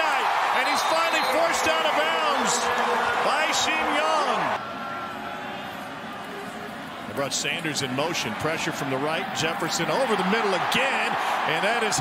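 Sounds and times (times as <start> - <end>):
stadium crowd cheering: 0.0 - 12.0.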